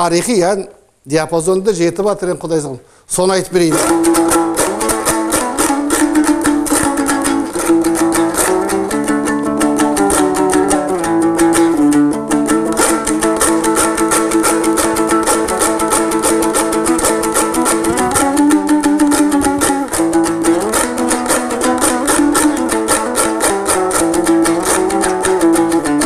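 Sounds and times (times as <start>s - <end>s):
strummed lute melody: 3.6s - 26.0s.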